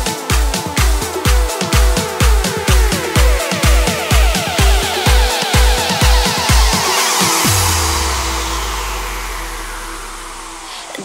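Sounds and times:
falling white-noise sweep: 0:01.1 - 0:11.0
held low bass note: 0:03.7 - 0:11.0.

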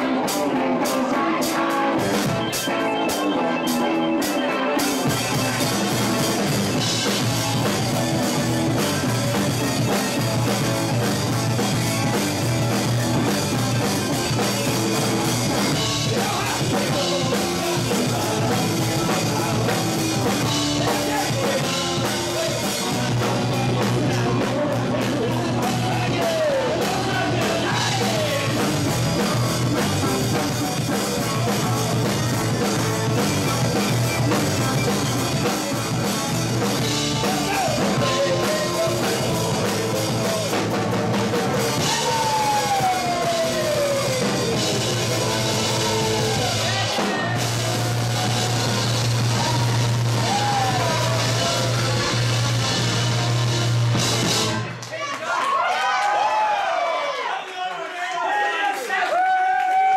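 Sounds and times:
man singing lead: 0:00.0 - 0:53.6
drum kit: 0:00.0 - 0:54.8
keyboards: 0:00.0 - 0:54.8
electric guitar: 0:00.0 - 0:54.9
bass: 0:00.0 - 0:55.0
voices calling out: 0:00.0 - 0:55.8.

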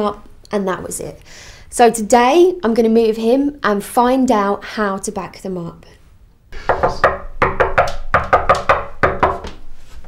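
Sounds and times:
knocking on wooden door: 0:06.7 - 0:09.6.

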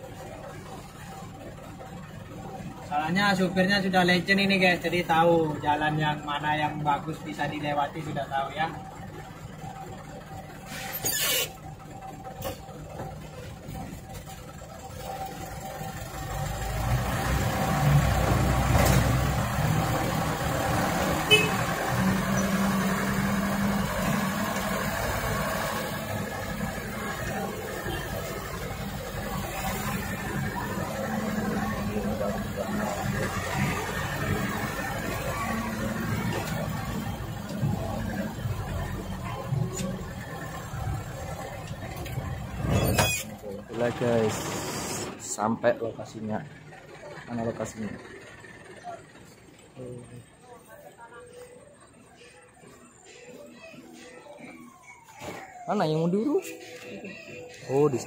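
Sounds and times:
truck engine droning: 0:00.0 - 0:58.0.

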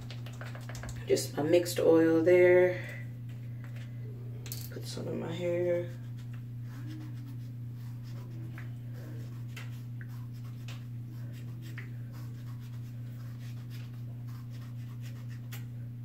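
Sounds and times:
steady low hum: 0:00.0 - 0:16.0
fingers scratching through hair: 0:05.7 - 0:15.7.

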